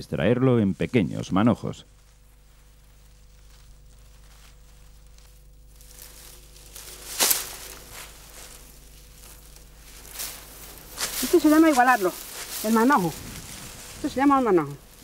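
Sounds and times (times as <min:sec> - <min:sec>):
grass rustling and tearing: 0:00.4 - 0:15.0.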